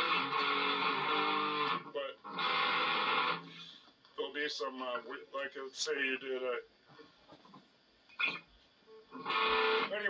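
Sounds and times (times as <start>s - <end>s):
electric guitar chord ringing: 0.0s - 3.5s, 9.1s - 10.0s.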